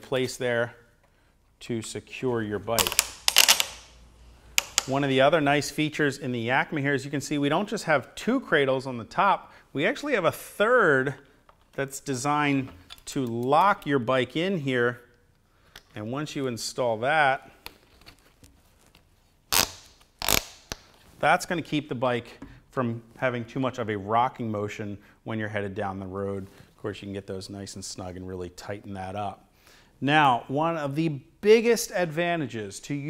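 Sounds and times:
plastic ratchet strap clicking: 0:02.8 - 0:03.9, 0:04.6 - 0:05.0, 0:19.5 - 0:20.9.

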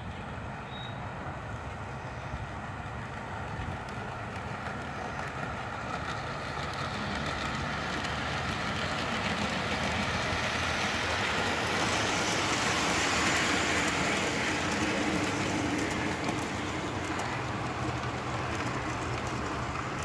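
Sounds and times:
model train rolling rumble: 0:00.4 - 0:20.0.

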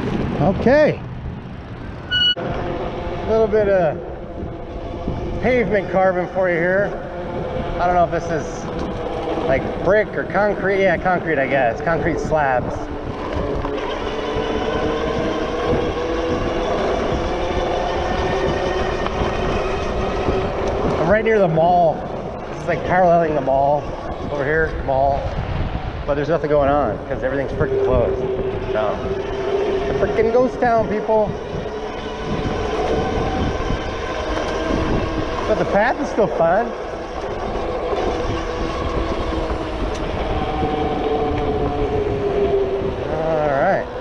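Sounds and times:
wind on microphone: 0:00.0 - 0:44.0
electric motor whine: 0:02.0 - 0:44.0.

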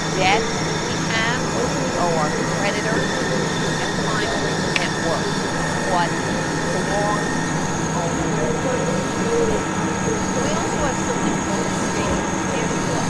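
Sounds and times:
faint indistinct voices: 0:00.0 - 0:13.0
mechanical drone and hum: 0:00.0 - 0:13.0.

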